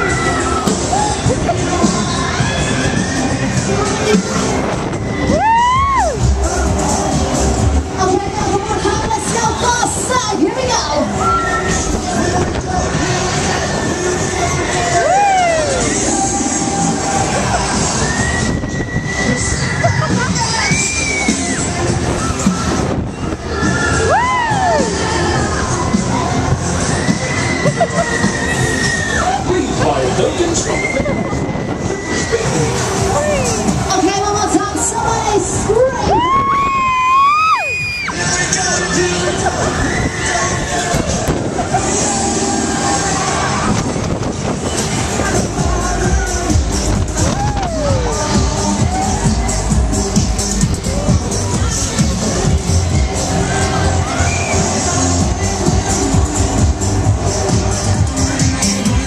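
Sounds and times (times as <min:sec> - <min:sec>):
loud fairground music: 0:00.0 - 0:59.0
riders screaming and shouting: 0:00.0 - 0:59.0
riders screaming: 0:05.1 - 0:06.2, 0:23.5 - 0:29.8.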